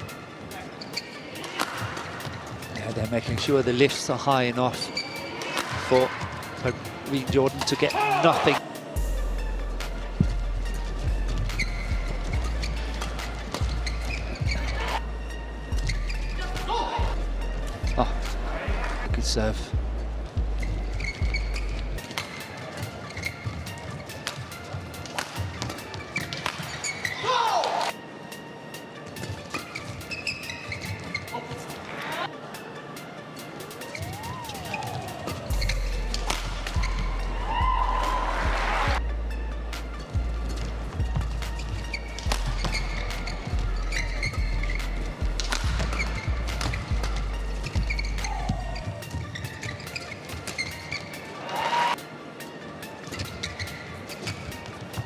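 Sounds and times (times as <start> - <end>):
shoes squeaking on court: 0.0 - 8.6, 10.2 - 18.4, 20.2 - 32.3, 33.4 - 37.3, 39.8 - 55.0
background music with bass beat: 9.0 - 22.0
racket striking shuttlecock: 22.0 - 22.5, 24.2 - 27.0, 36.1 - 36.8, 42.1 - 43.2, 45.4 - 47.2.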